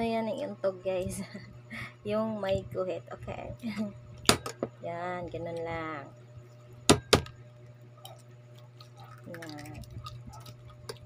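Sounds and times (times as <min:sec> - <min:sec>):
egg knocked on hard surface: 0:06.9 - 0:07.3.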